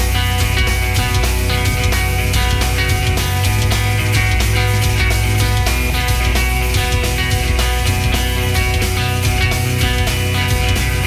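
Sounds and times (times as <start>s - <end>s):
rock band playing live: 0.0s - 11.0s.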